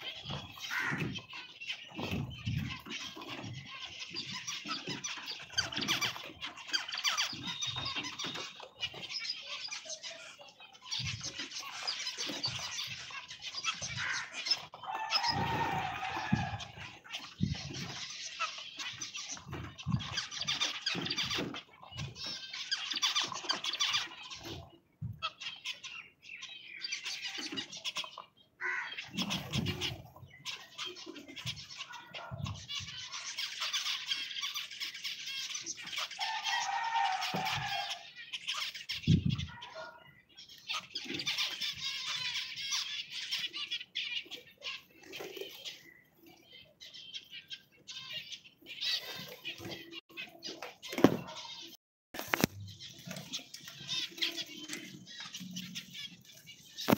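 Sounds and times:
finches chattering: 0.0s - 56.9s.

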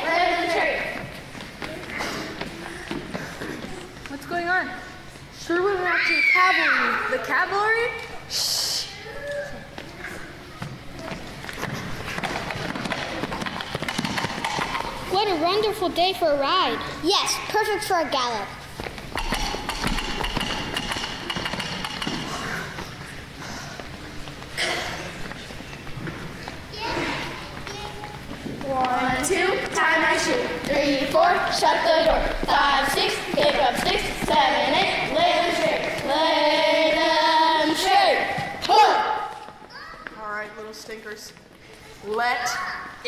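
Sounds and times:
children's feet on wooden stage: 0.0s - 5.3s, 9.1s - 16.0s, 18.6s - 43.0s
children singing: 29.8s - 38.5s.

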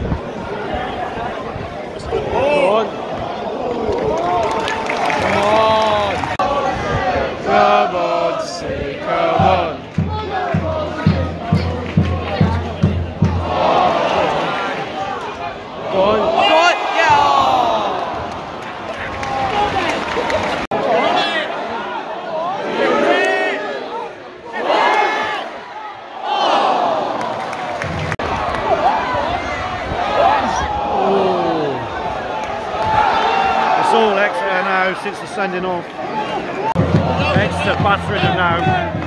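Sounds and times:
crowd singing and chanting: 6.0s - 16.3s.

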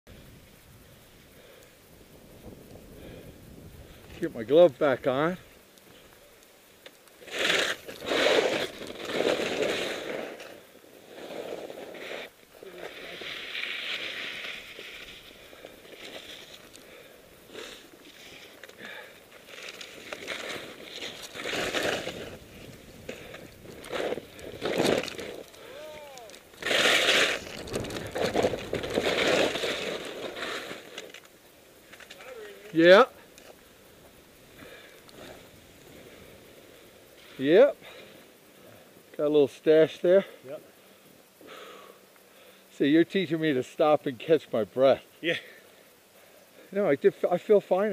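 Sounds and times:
skis hissing and scraping on snow: 0.1s - 47.9s.

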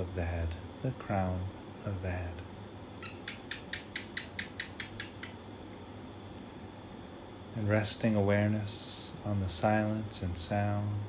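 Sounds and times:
faint background hiss: 0.0s - 11.0s
sharp high clicks: 3.0s - 5.4s.

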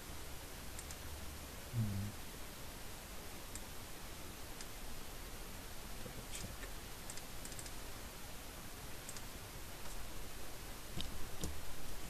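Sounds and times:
steady background hiss: 0.0s - 12.0s
computer mouse clicks: 0.7s - 1.0s, 6.4s - 7.8s, 9.0s - 10.0s.

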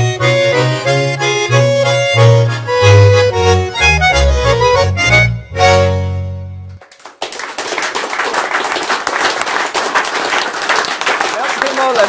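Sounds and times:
audience applauding: 6.8s - 12.0s.

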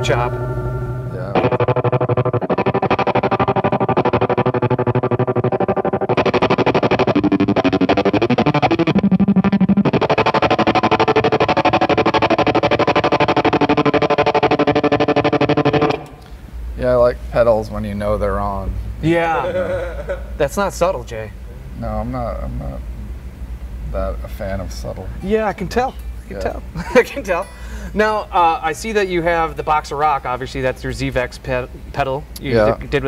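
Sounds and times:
distorted electric guitar with tremolo: 0.0s - 16.2s.

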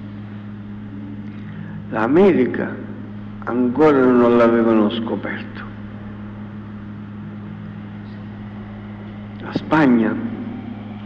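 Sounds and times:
low electrical hum: 0.0s - 11.0s
microphone hiss: 0.0s - 11.0s
man talking: 1.9s - 5.7s, 9.4s - 10.4s.

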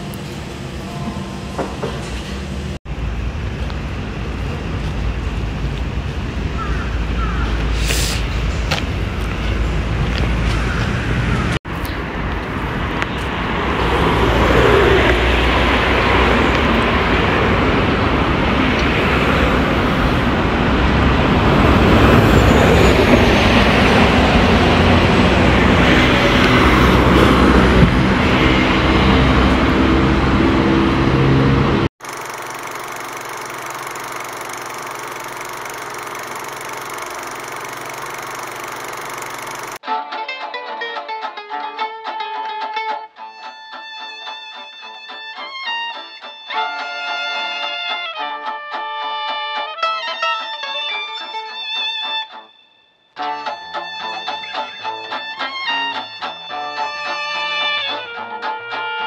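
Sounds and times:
city street traffic rumble: 0.0s - 39.8s
steady hum: 32.0s - 39.8s.

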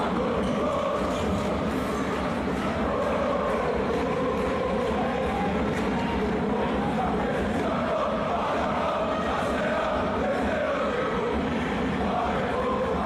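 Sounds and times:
crowd chanting and singing: 0.0s - 13.0s.

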